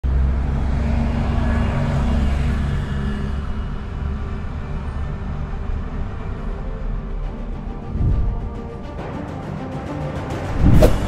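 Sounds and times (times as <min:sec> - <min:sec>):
traffic noise: 0:00.0 - 0:08.6.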